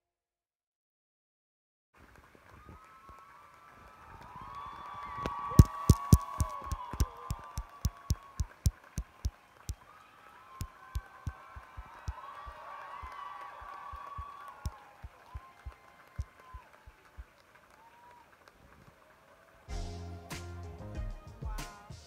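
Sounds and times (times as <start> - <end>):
audience applauding and cheering: 2.0 - 20.5
hands clapping close by: 4.1 - 9.9, 10.6 - 19.0.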